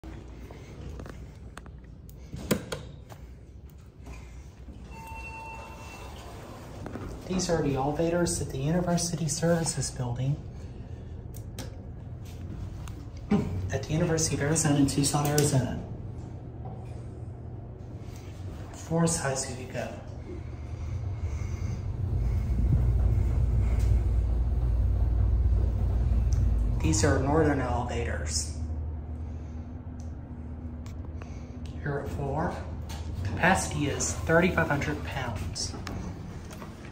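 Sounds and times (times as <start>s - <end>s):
elevator arrival chime: 4.8s - 6.8s
elevator car rumbling upward: 4.8s - 30.9s.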